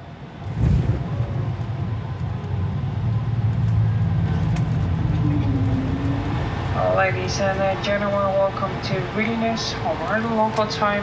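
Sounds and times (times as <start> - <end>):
airliner cabin engine drone: 0.0 - 11.0.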